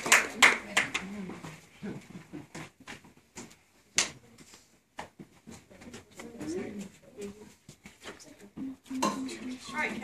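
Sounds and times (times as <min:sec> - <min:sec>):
children's quiet voices: 0:04.2 - 0:10.0.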